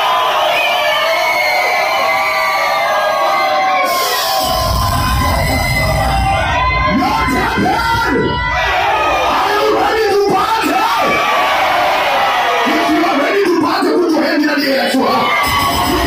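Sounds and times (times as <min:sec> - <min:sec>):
crowd shouting and cheering: 0:00.0 - 0:16.0
low rumble: 0:04.4 - 0:09.7.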